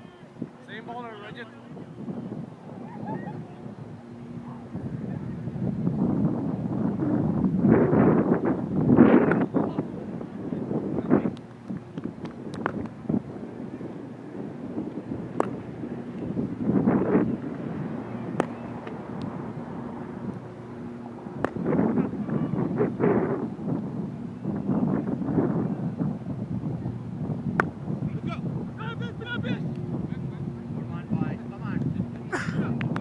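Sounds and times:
distant players calling: 0.0 - 5.6, 14.9 - 23.0, 26.8 - 32.9
wind buffeting microphone: 0.0 - 33.0.

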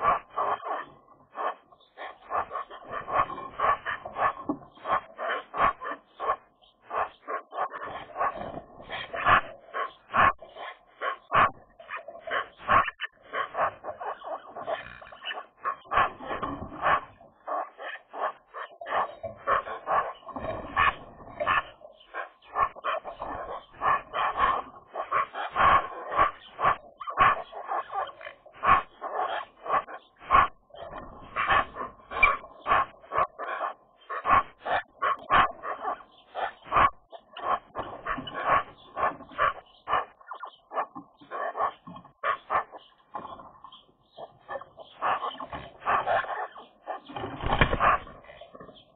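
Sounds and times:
magpies calling: 0.0 - 48.9.

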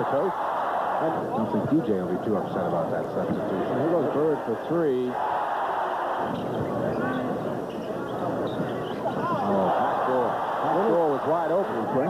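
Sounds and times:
arena crowd roar: 0.0 - 2.5, 3.4 - 7.7, 9.0 - 12.0.

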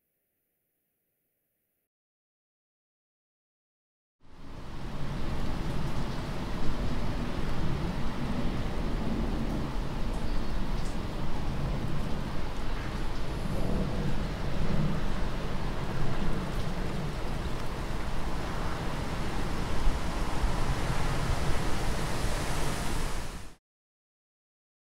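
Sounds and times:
steady rushing noise: 11.1 - 23.6.

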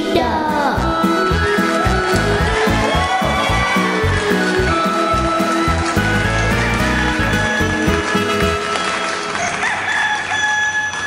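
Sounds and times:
children's song music: 0.0 - 9.9
rooster crowing: 1.4 - 8.7, 9.3 - 11.0.

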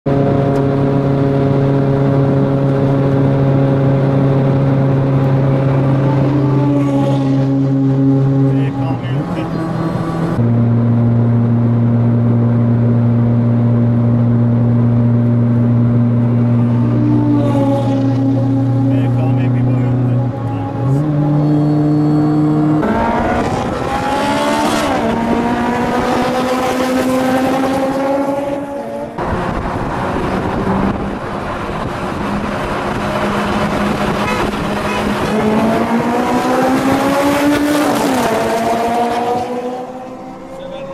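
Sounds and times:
car engines revving: 0.1 - 40.9.

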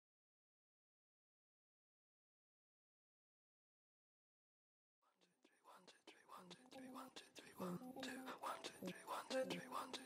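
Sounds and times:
faint whispered voices: 5.6 - 10.0.

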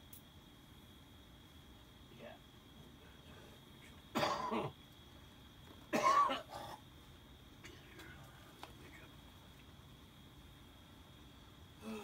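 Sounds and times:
man coughing: 4.1 - 4.7, 5.9 - 6.8.

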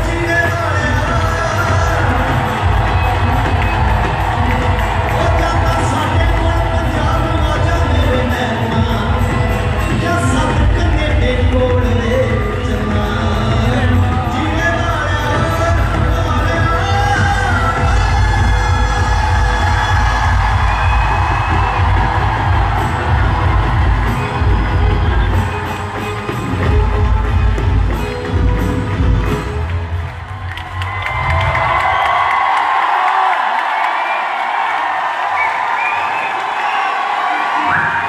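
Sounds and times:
audience cheering and shouting: 0.0 - 38.0
live concert music with heavy bass: 0.0 - 38.0.

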